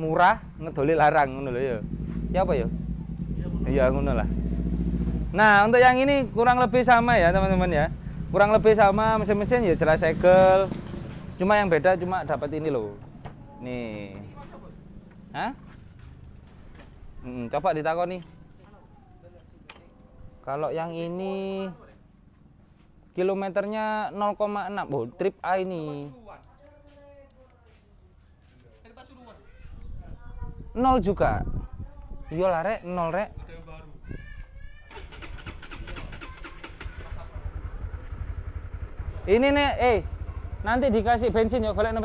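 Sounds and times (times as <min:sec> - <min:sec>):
motorcycle engine idling: 0:00.0 - 0:20.2, 0:34.9 - 0:42.0
sharp click: 0:19.7 - 0:19.9.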